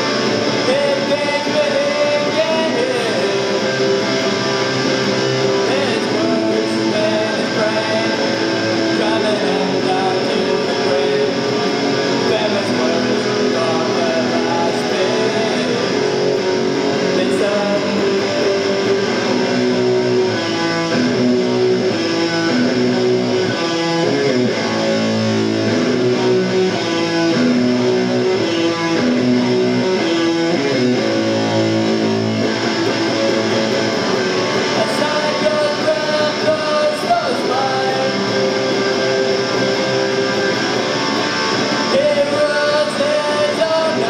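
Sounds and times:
punk rock band playing live: 0.0 - 44.0.

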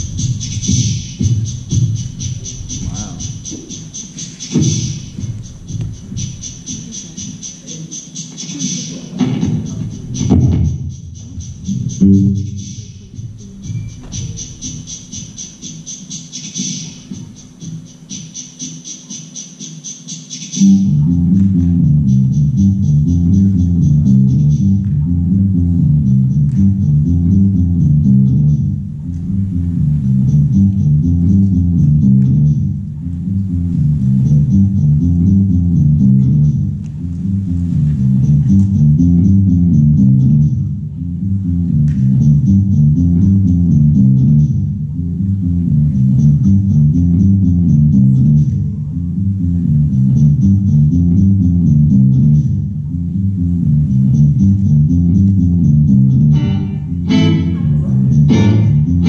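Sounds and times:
amplified guitar music: 56.2 - 59.0.

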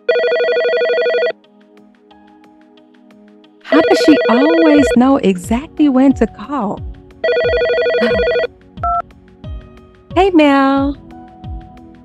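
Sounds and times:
telephone trilling ring: 0.1 - 1.4, 3.7 - 5.0, 7.2 - 8.5.

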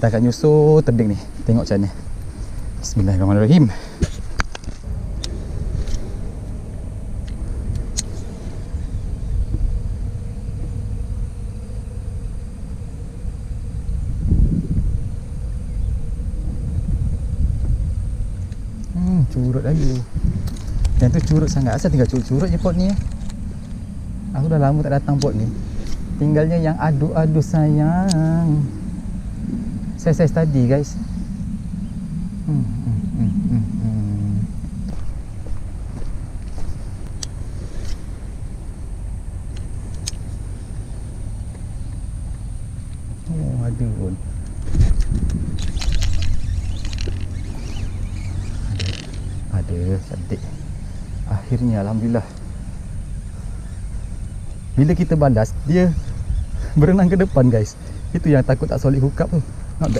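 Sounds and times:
high-pitched insect drone: 0.0 - 59.9
wind rumble on microphone: 0.0 - 59.9
man humming: 18.8 - 19.4, 32.4 - 34.7.

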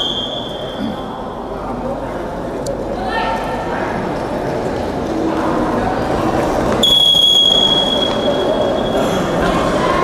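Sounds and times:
referee's whistle blast: 0.0 - 0.8, 6.8 - 9.0
indoor sports hall noise: 0.0 - 10.0.

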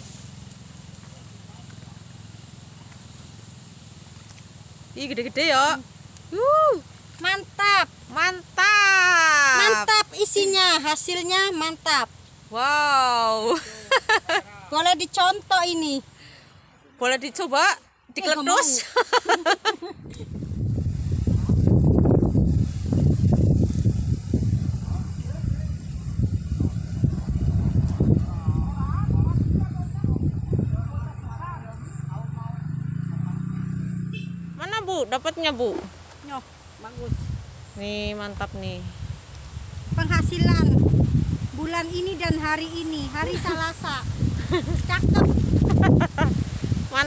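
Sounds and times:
outdoor hiss: 0.0 - 29.8, 35.3 - 47.0
person laughing: 13.4 - 14.6, 18.5 - 20.4, 44.4 - 46.4
wind buffeting microphone: 20.0 - 33.6, 36.9 - 47.0.

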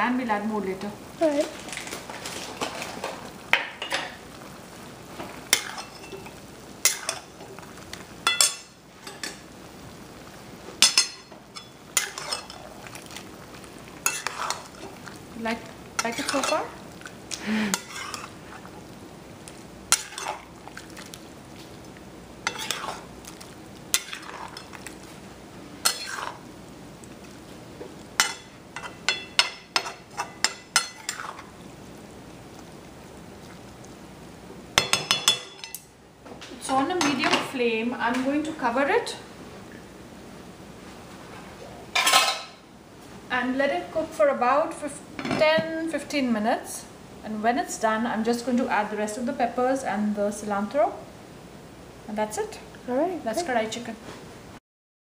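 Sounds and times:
low sizzle of frying: 0.0 - 54.6
metal spatula scraping a pan: 5.5 - 7.4, 10.8 - 12.7, 14.0 - 15.0, 16.0 - 16.8, 17.7 - 18.4, 19.9 - 20.4, 22.4 - 23.1, 23.9 - 24.7, 25.8 - 26.4, 28.2 - 31.5.

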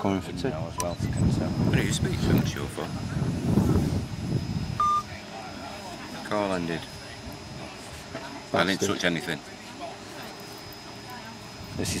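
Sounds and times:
phone electronic beep: 4.8 - 5.1.

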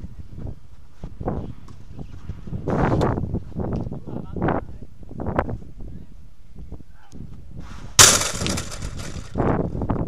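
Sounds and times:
crash with rattling ring: 8.0 - 9.4.

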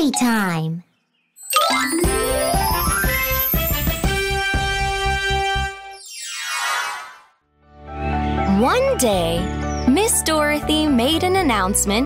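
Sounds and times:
bright chime with sparkly sweep: 1.4 - 3.6
upbeat children's jingle: 1.4 - 7.0.

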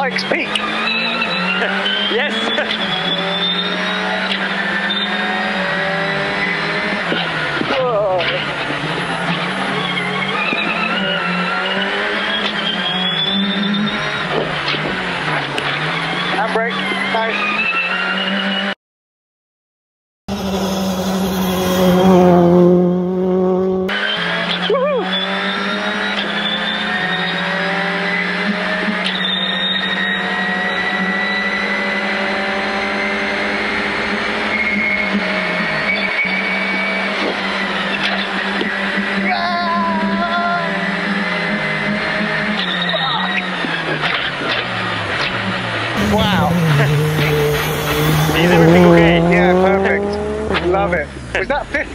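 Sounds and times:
rally car engine revving: 0.0 - 18.8, 20.3 - 51.9.

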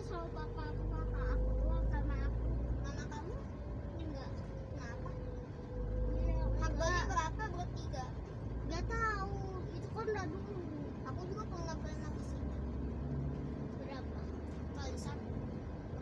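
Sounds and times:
indistinct talking: 0.0 - 13.2
car engine and tyres rumbling: 0.0 - 16.0.

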